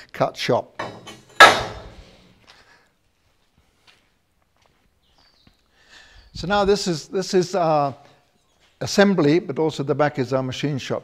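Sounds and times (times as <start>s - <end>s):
metallic clang of steel: 0.8s - 2.2s.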